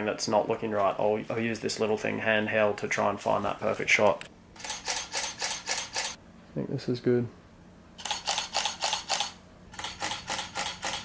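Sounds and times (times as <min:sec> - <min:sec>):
camera shutter clicks: 0:04.6 - 0:06.2, 0:08.0 - 0:11.0.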